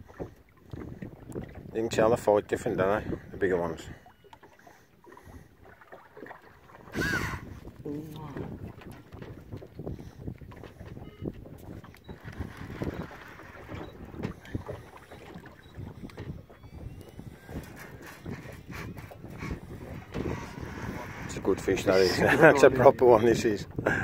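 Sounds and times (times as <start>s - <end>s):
wind buffeting microphone: 0.0s - 4.5s, 5.1s - 24.0s.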